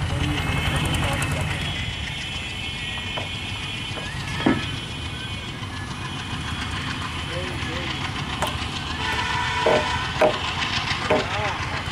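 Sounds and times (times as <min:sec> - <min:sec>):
train rumbling: 0:00.0 - 0:11.9.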